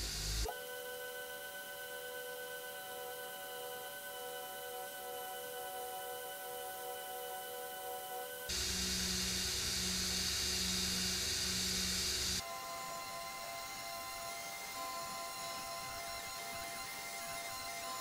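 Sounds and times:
belt grinder grinding metal: 0:08.5 - 0:12.4.

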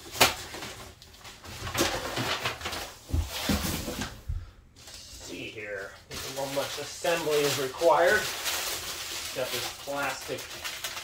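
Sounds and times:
rustling and scraping: 0:00.5 - 0:05.5.

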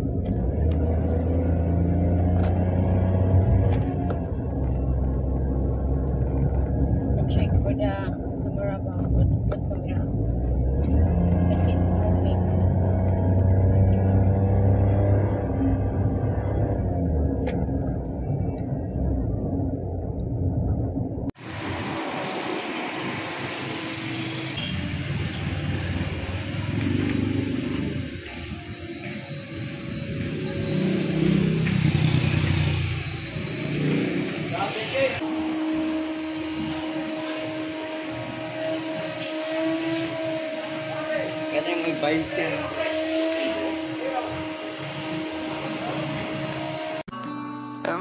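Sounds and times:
car engine and road rumble: 0:00.0 - 0:47.1
steady motor hum: 0:21.4 - 0:47.1.

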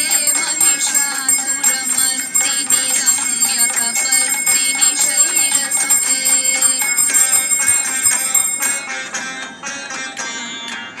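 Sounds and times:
hand bell rung rapidly: 0:00.0 - 0:09.1.

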